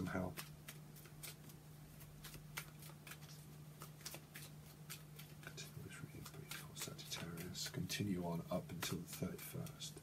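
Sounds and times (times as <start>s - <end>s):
cards shuffling: 0.0s - 10.0s
steady low hum: 0.0s - 10.0s.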